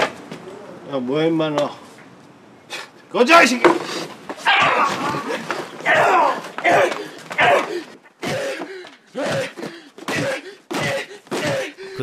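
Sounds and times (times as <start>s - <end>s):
man crying out: 4.4s - 12.0s.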